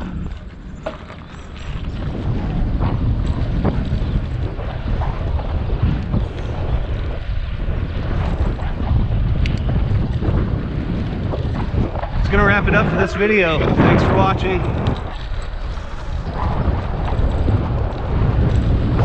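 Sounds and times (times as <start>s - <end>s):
bicycle tyres on rough pavement: 0.0s - 19.0s
wind buffeting microphone: 0.0s - 19.0s.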